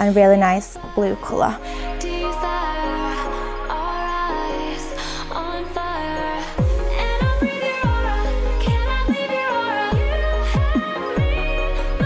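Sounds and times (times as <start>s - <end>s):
background music with deep bass: 0.0s - 12.0s.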